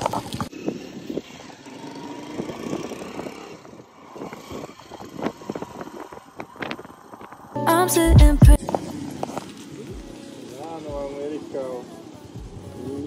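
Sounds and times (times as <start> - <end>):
motorcycle engine running: 8.2 - 13.0.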